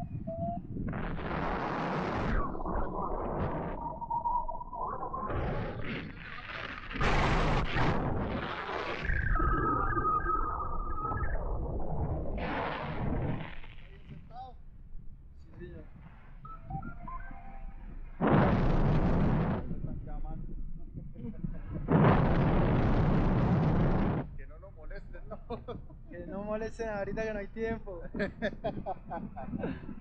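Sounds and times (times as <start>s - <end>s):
wind rumble on microphone: 0.0s - 30.0s
loud rushing wind gusts: 18.2s - 20.2s.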